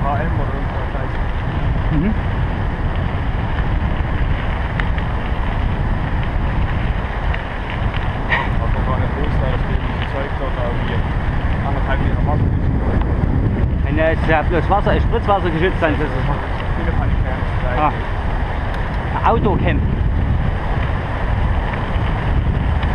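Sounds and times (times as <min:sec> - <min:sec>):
wind buffeting microphone: 0:00.0 - 0:22.9.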